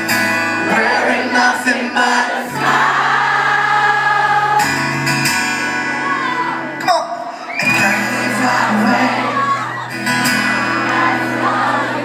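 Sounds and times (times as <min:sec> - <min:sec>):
live pop-rock band playing: 0:00.0 - 0:12.0
voices singing: 0:00.6 - 0:04.9, 0:07.8 - 0:09.8, 0:10.5 - 0:12.0.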